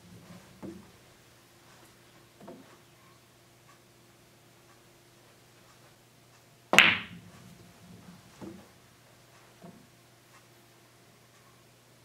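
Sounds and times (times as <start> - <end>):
balls rolling on cloth: 0.0 - 3.0, 6.7 - 10.4
cue ball striking balls: 6.7 - 8.7
dull knock of balls: 6.8 - 7.2.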